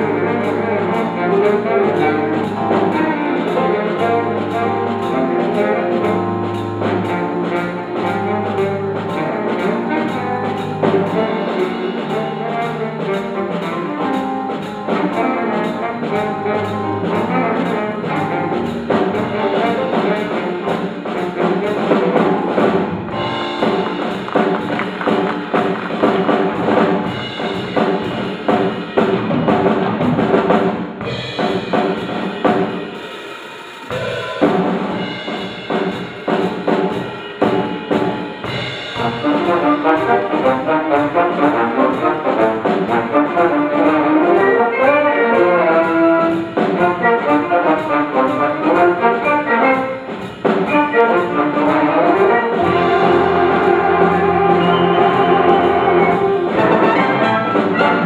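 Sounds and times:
big band playing: 0.0s - 58.0s.

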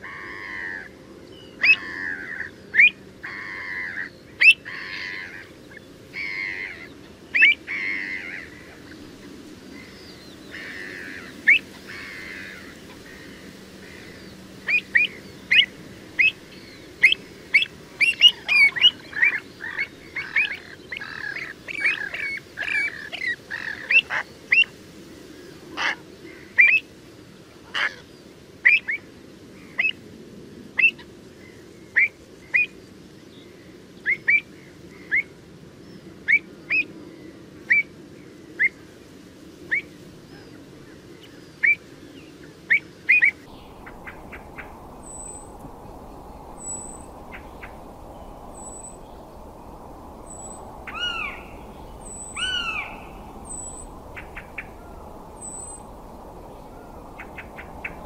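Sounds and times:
low background noise: 0.0s - 58.0s
birds calling sharp high notes: 43.2s - 56.0s.

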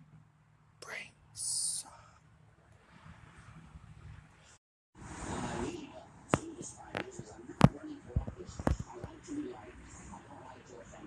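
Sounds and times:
man whispering: 0.8s - 2.2s.

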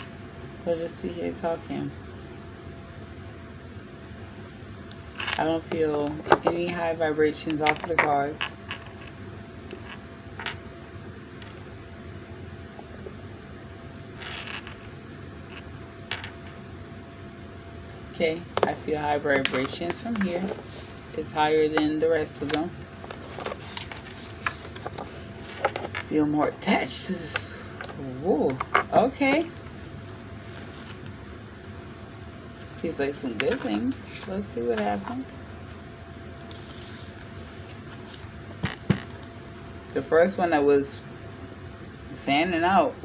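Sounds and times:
room tone hum and hiss: 0.0s - 43.0s.

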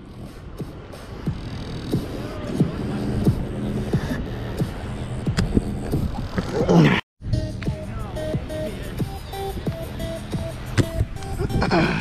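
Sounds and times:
steady low hum: 0.0s - 6.4s.

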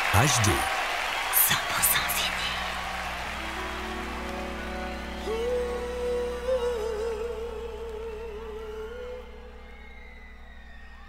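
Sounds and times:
low sustained chords: 2.2s - 11.0s
long held vocal note with vibrato: 5.0s - 10.0s.

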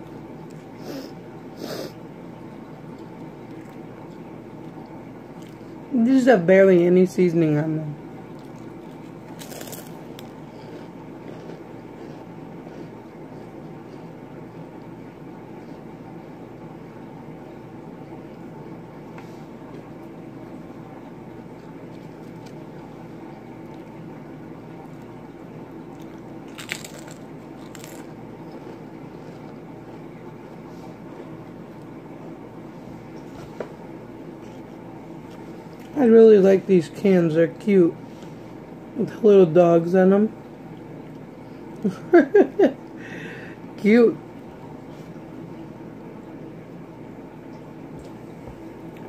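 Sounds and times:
steady background hum: 0.0s - 49.0s
crisps crunching: 8.3s - 13.5s, 25.8s - 32.0s.

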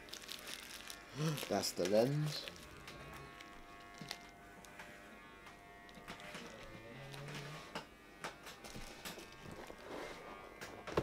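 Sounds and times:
bubble wrap crinkles: 0.0s - 4.8s, 5.6s - 7.8s, 8.6s - 10.4s
electric hair clippers buzzing: 0.0s - 11.0s.

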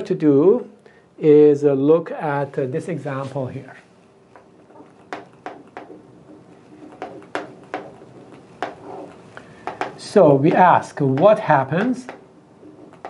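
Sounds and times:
marker writing on whiteboard: 3.8s - 13.0s.

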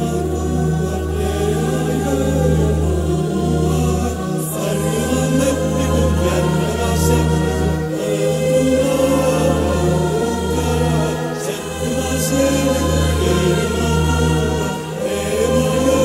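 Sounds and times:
choir singing folk song: 0.0s - 16.0s.

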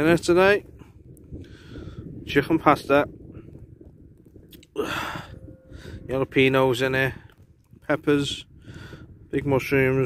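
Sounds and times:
sharp gasp close to microphone: 4.8s - 6.0s.

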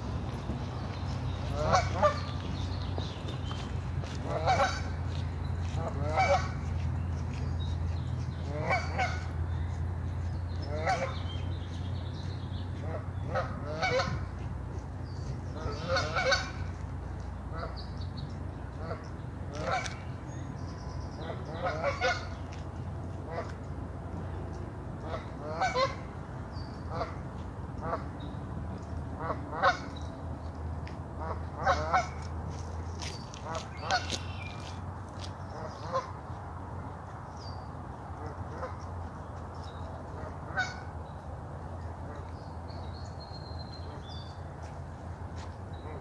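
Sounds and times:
geese honking: 1.5s - 2.3s, 4.3s - 4.9s, 5.8s - 6.6s, 8.5s - 9.3s, 10.7s - 11.2s, 12.8s - 14.2s, 15.6s - 16.7s, 25.0s - 26.0s.

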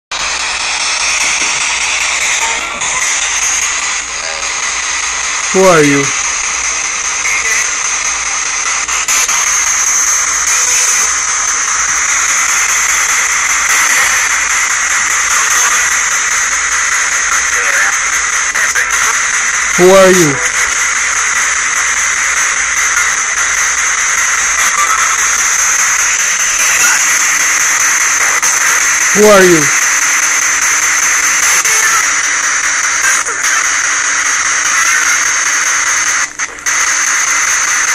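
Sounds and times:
radio static hiss: 0.1s - 37.9s.

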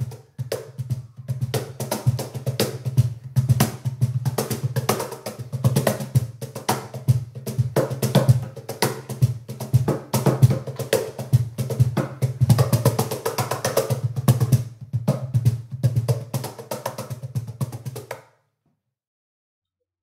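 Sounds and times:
cajon played by hand: 0.0s - 18.2s.

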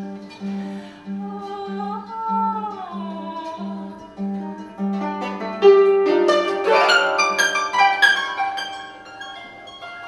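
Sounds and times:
harp notes plucked and struck: 4.4s - 10.0s.

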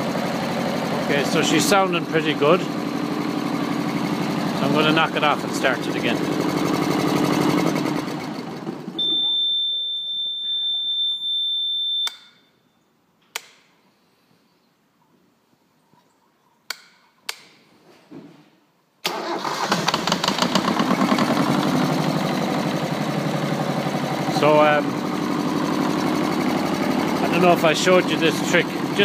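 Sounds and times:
marine diesel engine running: 0.0s - 9.0s, 19.1s - 29.0s.

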